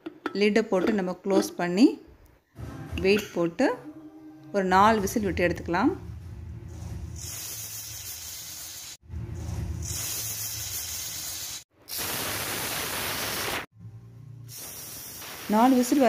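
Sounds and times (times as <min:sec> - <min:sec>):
pressure cooker valve hissing: 0:07.2 - 0:09.0, 0:09.8 - 0:13.6, 0:14.5 - 0:16.0
foam spitting: 0:11.9 - 0:13.7.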